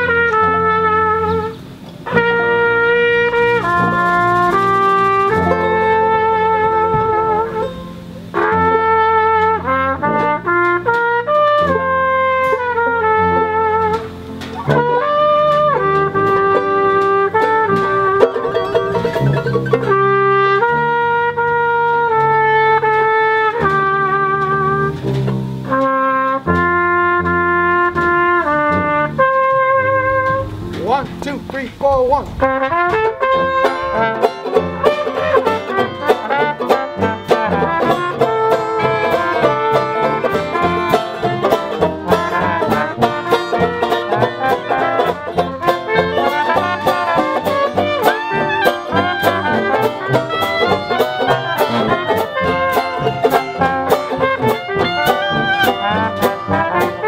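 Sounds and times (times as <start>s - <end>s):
trumpet melody: 0.0s - 57.0s
tuba bass line: 0.0s - 57.0s.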